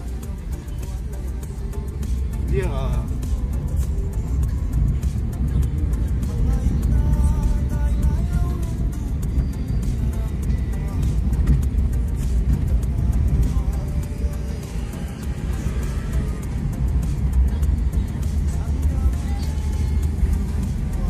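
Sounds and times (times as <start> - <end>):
car engine and tyres rumbling: 0.0 - 21.0
music playing in car: 0.0 - 21.0.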